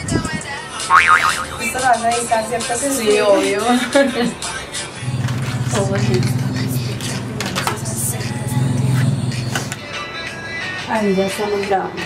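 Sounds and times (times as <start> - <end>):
background music: 0.0 - 12.0
wavering boing sound effect: 0.9 - 1.6
woman talking: 1.6 - 4.0, 5.7 - 6.6, 10.9 - 12.0.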